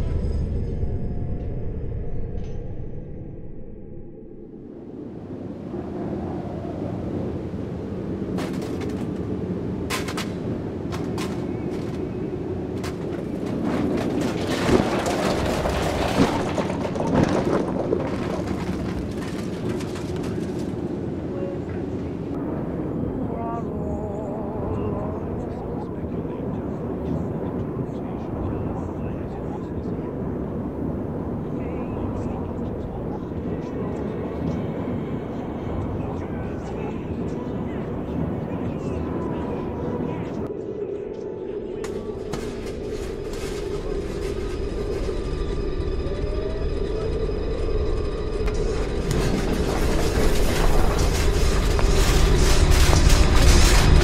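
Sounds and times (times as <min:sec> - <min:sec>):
low rumble: 0:00.0 - 0:54.0
sharp cracks and crashes: 0:09.8 - 0:20.8, 0:48.4 - 0:54.0.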